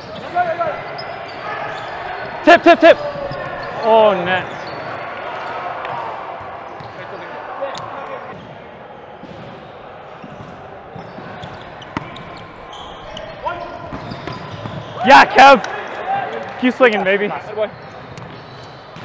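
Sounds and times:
murmur of players' voices: 0:00.0 - 0:19.0.

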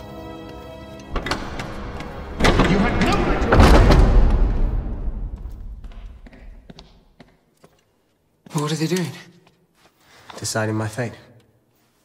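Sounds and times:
footsteps: 0:00.0 - 0:10.6.

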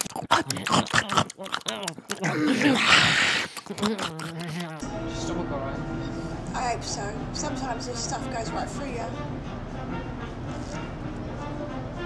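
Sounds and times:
person whining and groaning: 0:00.0 - 0:04.8.

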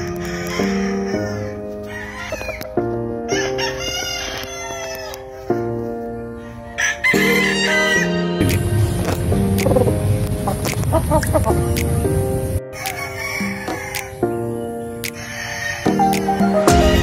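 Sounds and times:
background music: 0:00.0 - 0:17.0
rooster crowing: 0:00.2 - 0:02.7, 0:03.3 - 0:05.3, 0:06.6 - 0:08.2, 0:12.8 - 0:14.1, 0:15.2 - 0:16.0.

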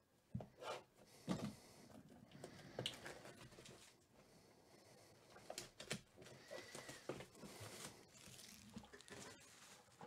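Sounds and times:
plastic wrap crinkling: 0:07.4 - 0:10.0.

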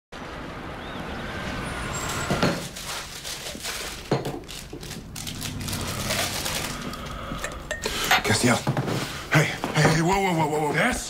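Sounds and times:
road traffic rumble: 0:00.2 - 0:09.6.

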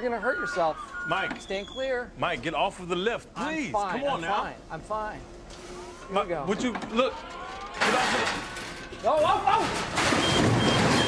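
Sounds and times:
electric forklift motor whine: 0:05.5 - 0:09.2.

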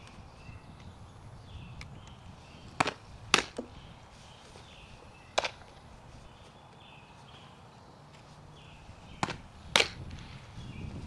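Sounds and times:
softball smacking catcher's mitt: 0:02.8 - 0:03.7, 0:09.2 - 0:10.1.

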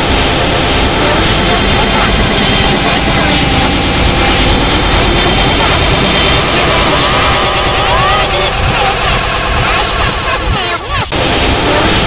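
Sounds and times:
distorted reversed singing: 0:00.0 - 0:12.0.

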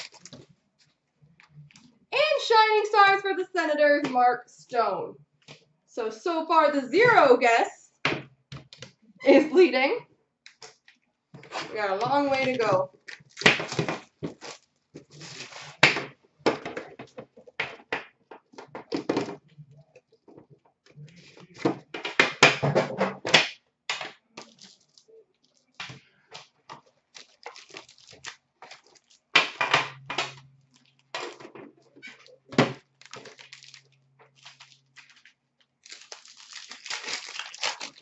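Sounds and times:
card packs crinkling: 0:00.0 - 0:00.6, 0:12.1 - 0:15.8, 0:24.4 - 0:25.8, 0:26.4 - 0:29.6, 0:32.1 - 0:38.0.

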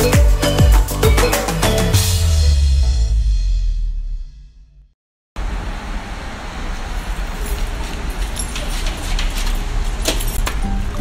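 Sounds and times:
steady rumbling background noise: 0:05.4 - 0:11.0.

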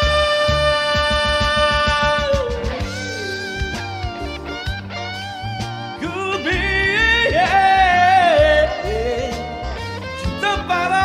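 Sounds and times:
man singing a ballad: 0:00.0 - 0:04.6, 0:05.9 - 0:11.0
backing track: 0:00.0 - 0:11.0.

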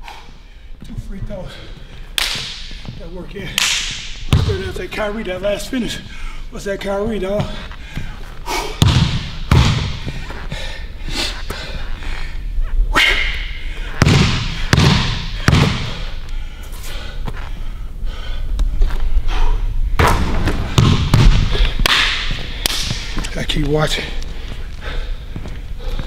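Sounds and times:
basketball bouncing on hardwood floor: 0:04.3 - 0:04.7, 0:08.8 - 0:10.2, 0:14.0 - 0:15.9, 0:20.0 - 0:21.6.

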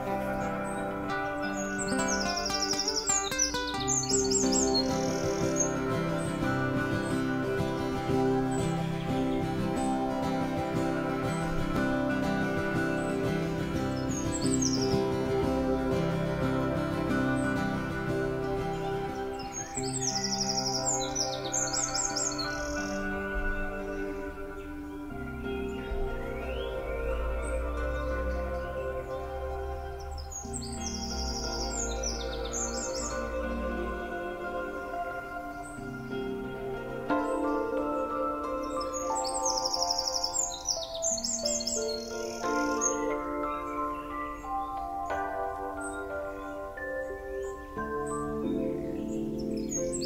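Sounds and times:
soft background music: 0:00.0 - 0:50.0
songbird chirping and trilling: 0:00.0 - 0:50.0.

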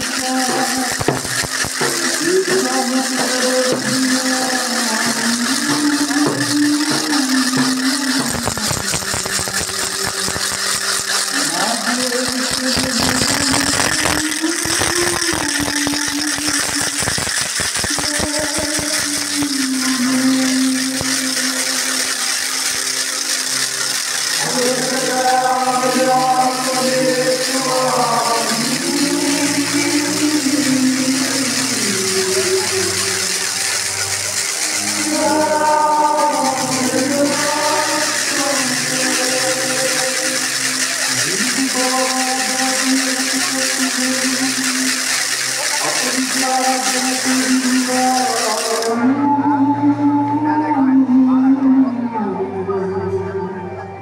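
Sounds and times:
person singing a hymn: 0:00.0 - 0:01.2, 0:01.8 - 0:08.6, 0:11.2 - 0:16.6, 0:17.9 - 0:22.3, 0:24.3 - 0:54.0
crowd noise hiss: 0:00.0 - 0:54.0.

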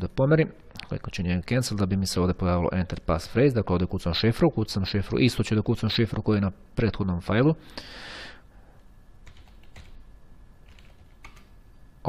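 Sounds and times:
keyboard typing: 0:09.2 - 0:10.0, 0:10.6 - 0:11.6.

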